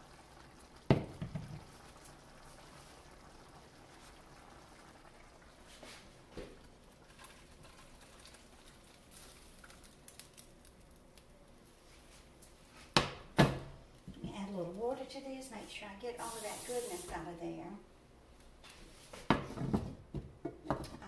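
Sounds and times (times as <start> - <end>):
thick gravy being poured: 0.0 - 11.3.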